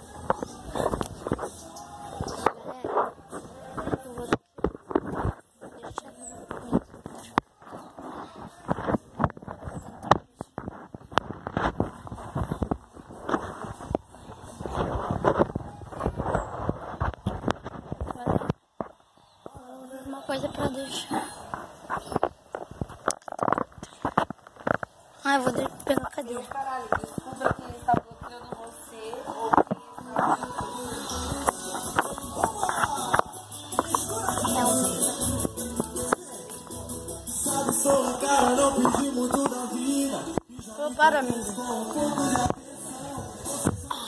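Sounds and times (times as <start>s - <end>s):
voice murmuring: 29.2s - 40.4s.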